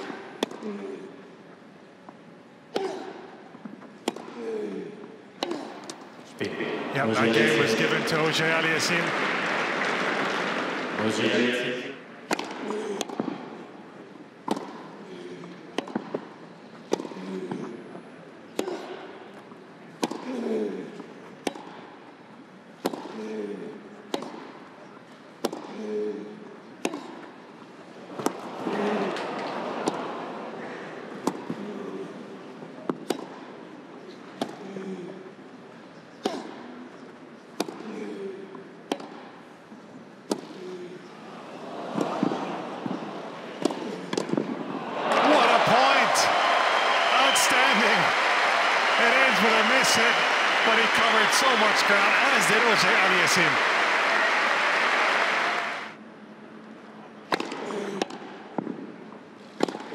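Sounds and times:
crowd applause: 6.4 - 12.2, 44.6 - 56.0.

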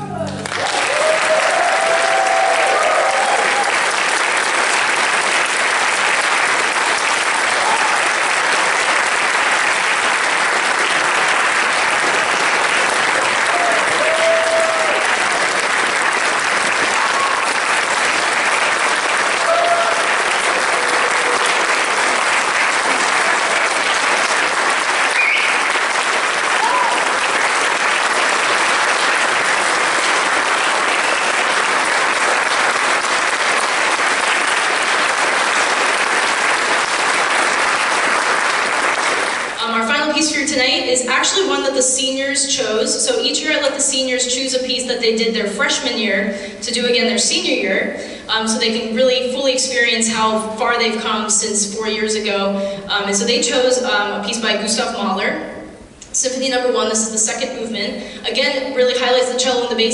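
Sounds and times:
short cheers: 0.0 - 3.9, 7.5 - 8.2, 13.4 - 15.4, 16.8 - 17.7, 19.3 - 21.7, 25.1 - 25.8, 26.4 - 27.3
audience applauding: 0.0 - 39.6.

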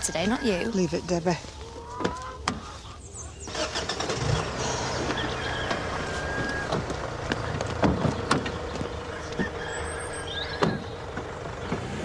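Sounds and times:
car engine starting and running: 3.4 - 12.0.

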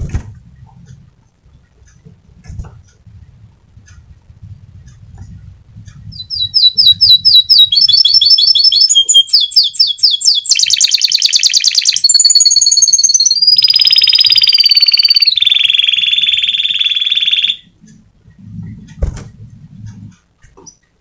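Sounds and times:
canary singing: 2.8 - 21.0.

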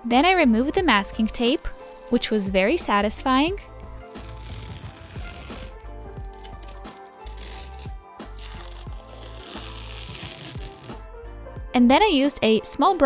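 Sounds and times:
background music: 0.0 - 13.0
masking tape peeling: 1.2 - 2.4, 3.6 - 11.0.

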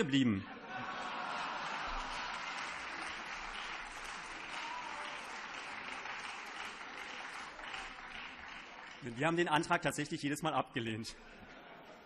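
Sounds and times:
audience applause in large chamber: 0.9 - 10.4.

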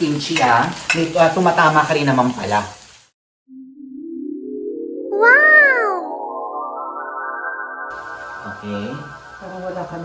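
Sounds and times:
cat meowing: 5.1 - 6.1.

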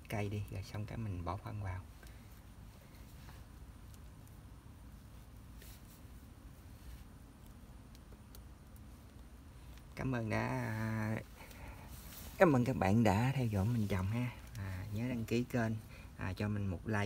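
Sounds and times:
hands rustling potting soil: 0.0 - 17.0
soft ticks: 3.8 - 4.4, 7.4 - 10.0.

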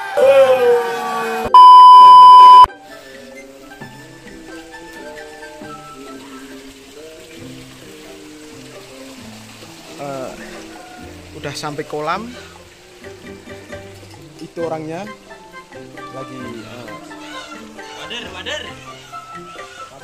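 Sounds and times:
loud beep tone: 1.5 - 2.7
quiet background music: 2.7 - 20.0.

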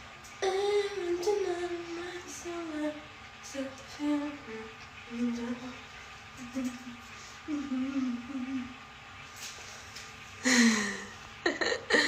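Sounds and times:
woman humming: 6.4 - 8.8, 10.5 - 12.0.

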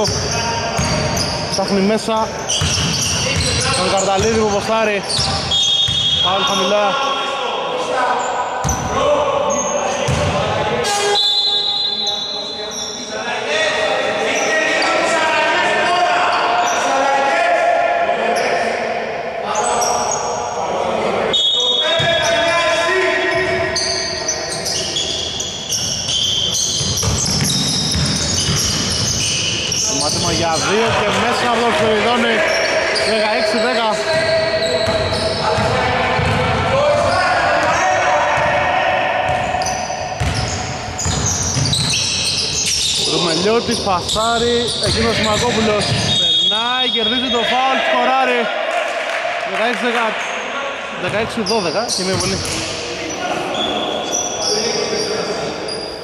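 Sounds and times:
players shouting: 27.4 - 52.4.

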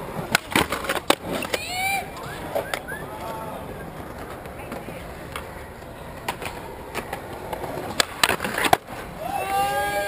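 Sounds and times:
skateboard clacking on ground: 0.0 - 10.0
skateboard wheels rolling on concrete: 0.0 - 10.0.

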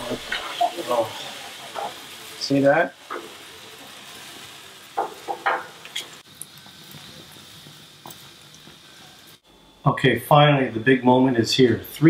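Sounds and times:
meat sizzling on a grill: 0.0 - 9.4.

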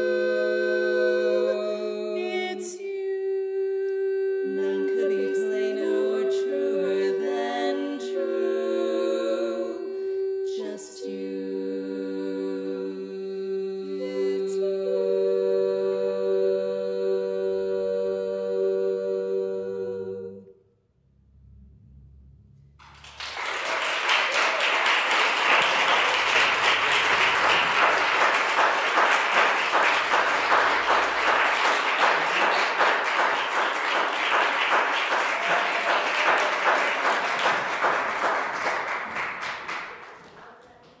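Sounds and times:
audience applause: 22.8 - 40.9.

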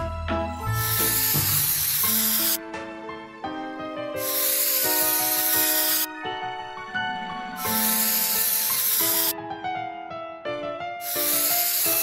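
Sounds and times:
spray paint can hissing: 0.8 - 2.6, 4.2 - 6.1, 7.6 - 9.3, 11.0 - 12.0.

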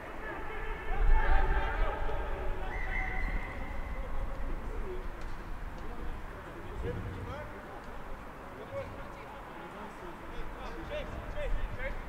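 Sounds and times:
players shouting calls: 0.0 - 4.7.

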